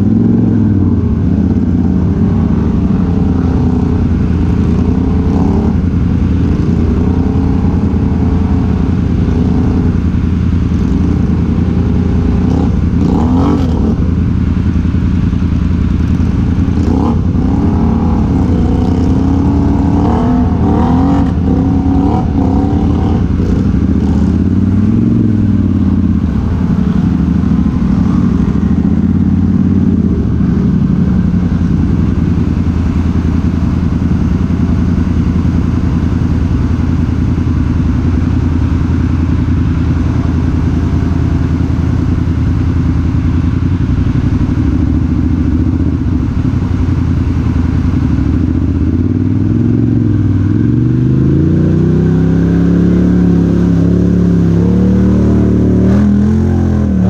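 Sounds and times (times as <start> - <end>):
atv engine revving: 0.0 - 57.0
atv engine running steadily: 0.0 - 57.0.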